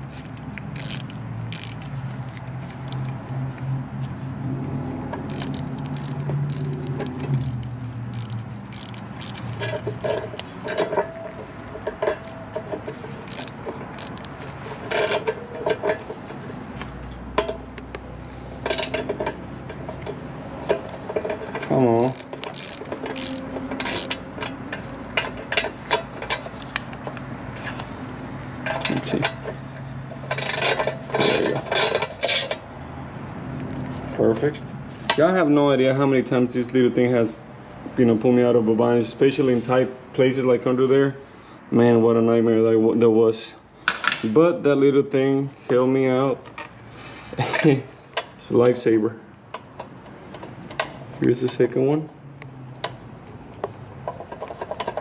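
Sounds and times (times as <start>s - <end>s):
hand ratchet clicking: 0.0s - 3.1s, 5.2s - 11.2s, 13.2s - 15.4s, 21.2s - 24.2s.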